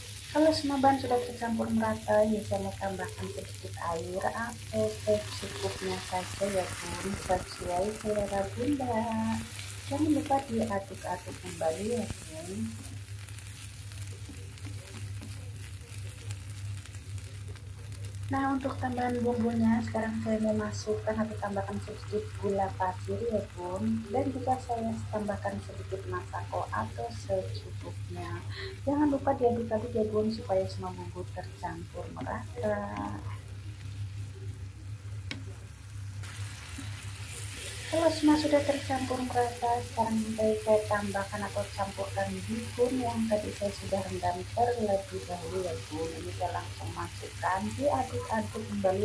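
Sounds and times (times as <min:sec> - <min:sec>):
food sizzling in a wok: 0:00.0 - 0:49.0
low steady hum: 0:00.0 - 0:49.0.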